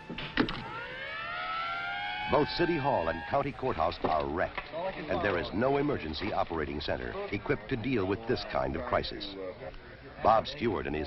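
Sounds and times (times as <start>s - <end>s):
fire truck siren wailing: 0.0s - 4.4s.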